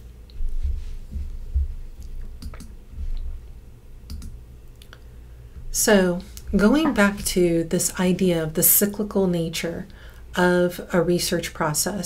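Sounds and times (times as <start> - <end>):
computer mouse clicks: 2.4 - 3.3, 4.1 - 4.9.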